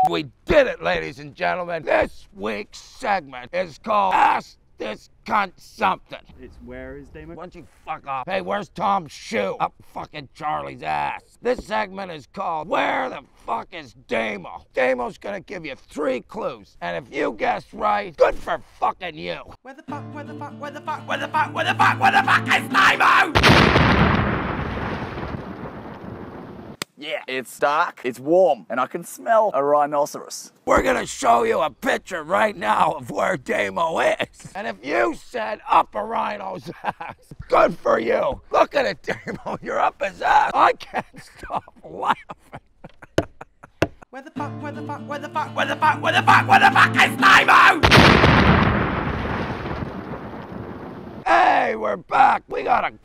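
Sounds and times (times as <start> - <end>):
explosion sound effect: 23.3 - 26.8, 47.8 - 51.2.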